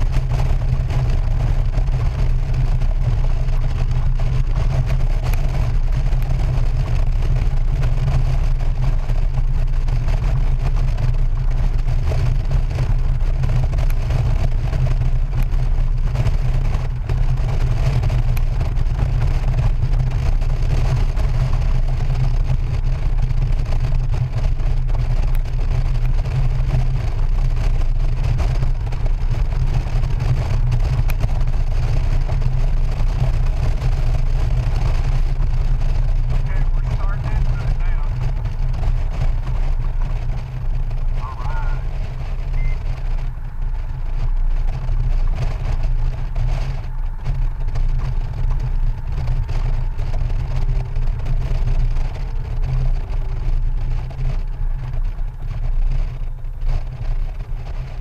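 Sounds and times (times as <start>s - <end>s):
motorcycle road noise: 0.0s - 58.0s
wind buffeting microphone: 0.0s - 58.0s.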